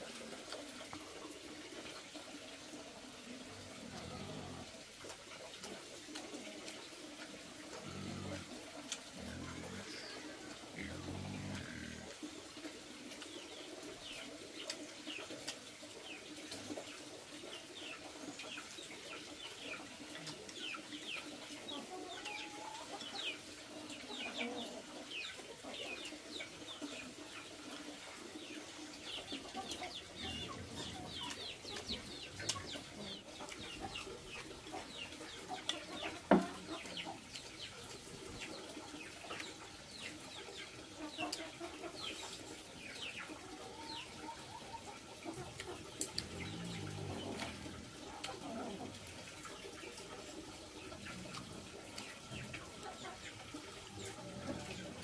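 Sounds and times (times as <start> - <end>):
birds chirping: 28.0 - 48.8.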